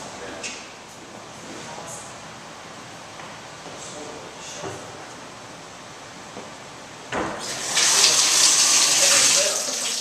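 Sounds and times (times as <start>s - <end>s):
water gushing into bathtub: 7.4s - 10.0s.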